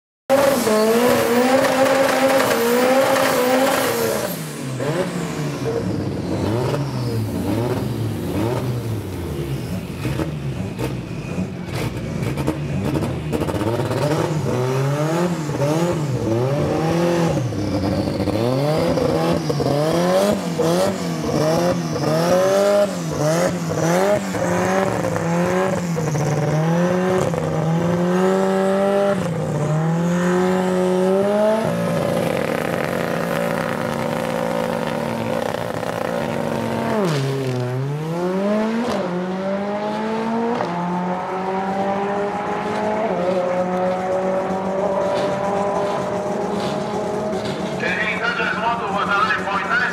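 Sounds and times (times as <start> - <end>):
car engine revving: 0.3 - 49.9.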